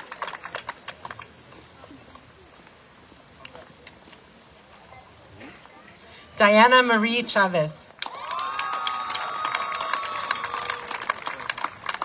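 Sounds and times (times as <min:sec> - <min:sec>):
audience clapping and cheering: 0:00.0 - 0:01.4, 0:08.0 - 0:12.0.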